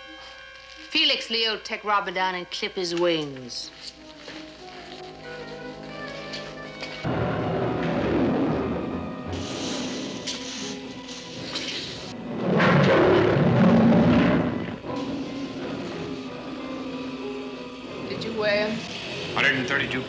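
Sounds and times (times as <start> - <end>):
dramatic orchestral music: 5.2 - 20.0
tiger roaring: 12.2 - 16.2.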